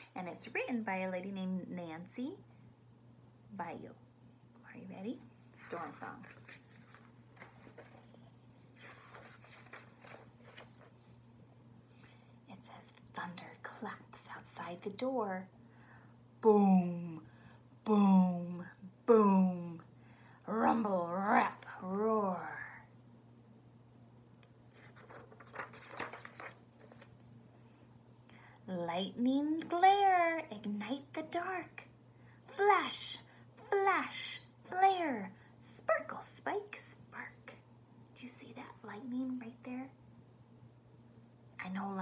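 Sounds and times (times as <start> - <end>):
low steady hum: 0.0 - 42.0
book pages rustling: 5.9 - 11.2, 24.7 - 27.3.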